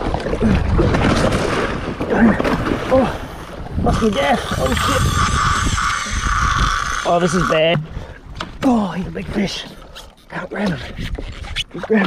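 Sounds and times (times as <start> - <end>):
wind buffeting microphone: 0.0 - 9.7
water splashing along kayak hull: 0.0 - 12.0.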